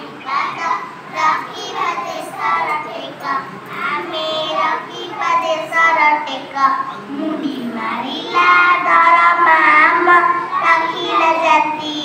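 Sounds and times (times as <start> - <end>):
girls singing together: 0.0 - 12.0.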